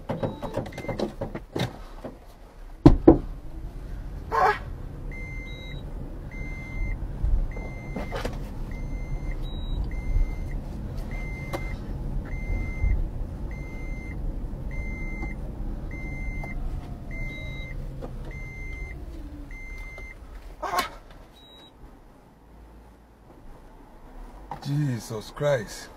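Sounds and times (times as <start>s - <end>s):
dashboard warning chime beeping: 0.0s - 1.1s, 5.1s - 20.2s, 21.3s - 21.8s
engine and road rumble: 0.0s - 25.9s
sharp knocks: 2.8s - 3.3s.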